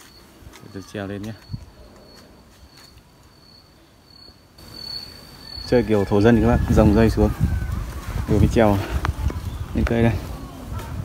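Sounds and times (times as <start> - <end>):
high-pitched insect trill: 0.0 - 7.1.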